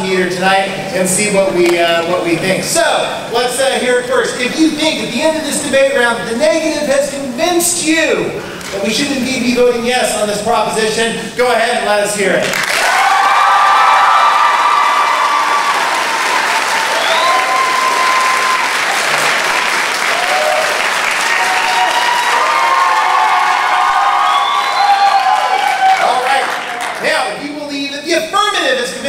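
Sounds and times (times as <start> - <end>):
audience applauding: 12.4 - 27.3
shouts and whoops: 12.8 - 19.1, 20.1 - 26.5.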